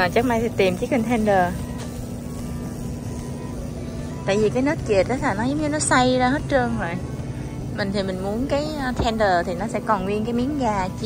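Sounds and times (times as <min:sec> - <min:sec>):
faint background music: 0:00.0 - 0:11.0
freezer hum: 0:00.0 - 0:11.0.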